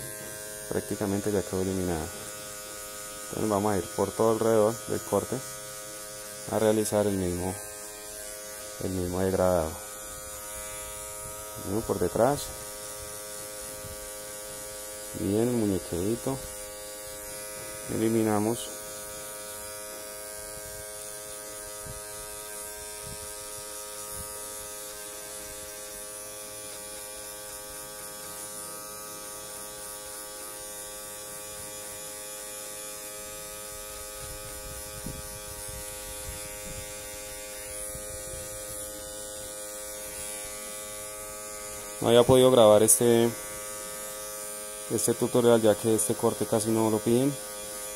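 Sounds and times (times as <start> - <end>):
electric hair clippers buzzing: 0.0 - 47.9.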